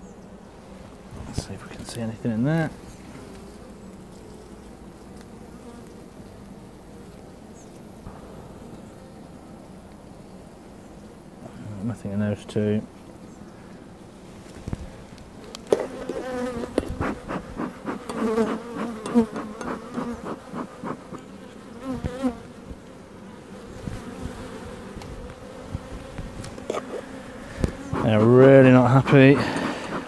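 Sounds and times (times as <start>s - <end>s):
honey bees buzzing: 0.0s - 30.0s
bee flying past: 0.1s - 10.4s, 13.2s - 30.0s.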